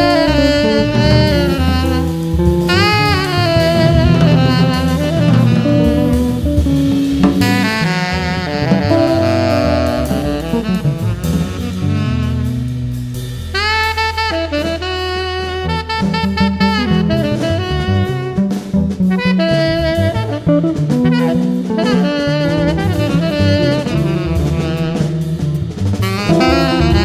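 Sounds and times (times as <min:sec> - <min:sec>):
bass: 0:00.0 - 0:27.0
drum kit: 0:00.0 - 0:27.0
saxophone melody: 0:00.0 - 0:27.0.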